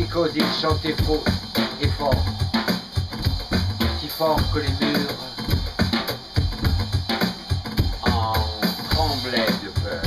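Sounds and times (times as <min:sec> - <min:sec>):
man speaking: 0:00.0 - 0:02.3, 0:04.0 - 0:05.4, 0:08.0 - 0:10.0
drum kit beat: 0:00.0 - 0:10.0.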